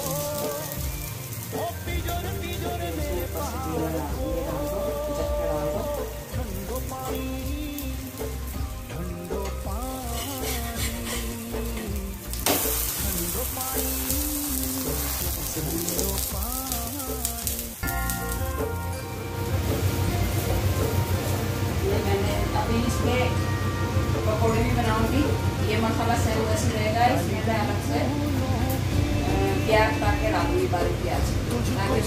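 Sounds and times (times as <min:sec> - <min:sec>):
bread sizzling in oil: 0:00.0 - 0:32.0
song playing: 0:00.0 - 0:32.0.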